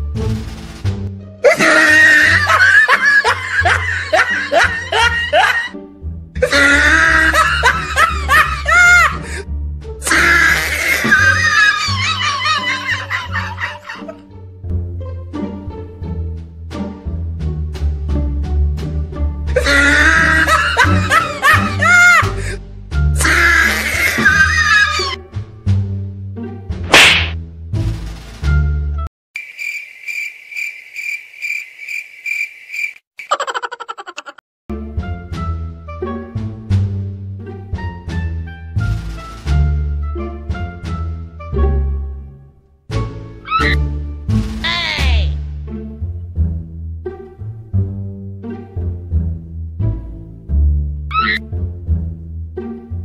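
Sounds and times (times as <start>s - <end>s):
loud burst of laughter: 1.5s - 5.7s, 6.4s - 9.2s, 10.2s - 14.2s, 19.6s - 22.5s, 33.3s - 34.4s
background music with plucked notes: 2.4s - 10.2s, 12.2s - 23.4s, 34.7s - 53.0s
whip crack swish: 26.9s - 27.4s.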